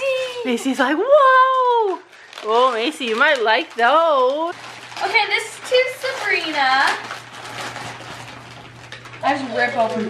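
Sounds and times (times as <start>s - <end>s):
wrapping paper rustling and tearing: 0.0s - 10.0s.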